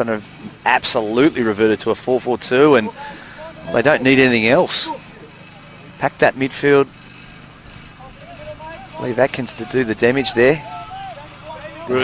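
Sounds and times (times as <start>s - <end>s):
faint distant voices calling: 0.0s - 12.0s.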